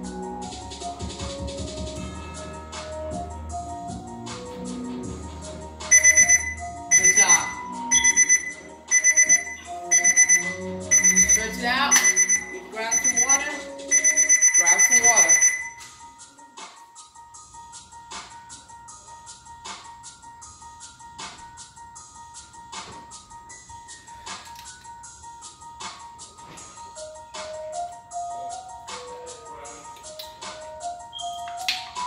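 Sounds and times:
hip-hop instrumental beat: 0.0 - 32.0
high-pitched alarm beeping: 5.9 - 15.8.

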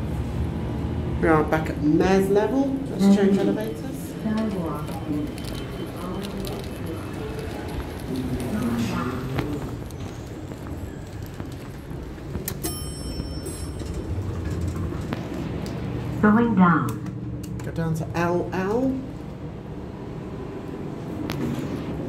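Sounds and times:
distant voices: 1.2 - 22.0
footsteps in a lobby: 3.1 - 16.2, 19.1 - 22.0.

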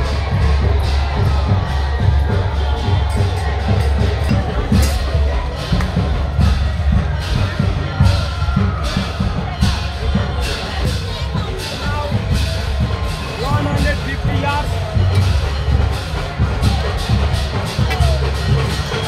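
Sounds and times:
drums beating busy rhythm: 0.0 - 19.0
voices of walking crowd: 0.0 - 19.0.

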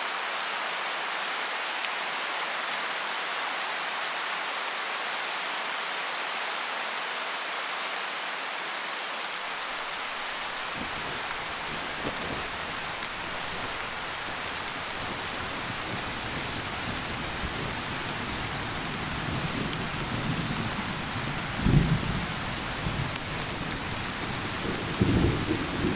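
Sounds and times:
steady rain: 0.0 - 25.9.

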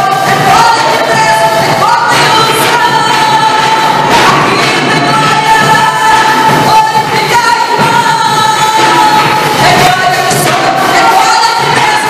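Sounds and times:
woman singing through a microphone: 0.0 - 12.0.

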